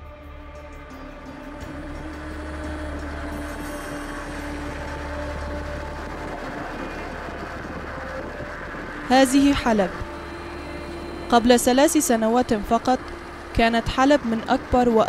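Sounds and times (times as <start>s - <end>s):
steady hum: 0.0s - 15.0s
vehicle road noise and engine drone: 0.0s - 15.0s.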